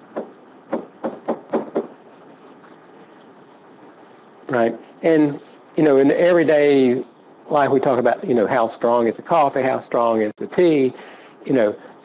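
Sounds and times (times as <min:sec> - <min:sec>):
stylus tapping on whiteboard: 0:00.2 - 0:01.9.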